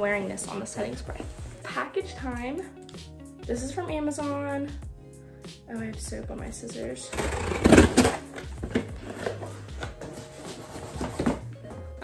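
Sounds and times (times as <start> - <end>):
cardboard scraping and crackling: 7.1 - 11.4.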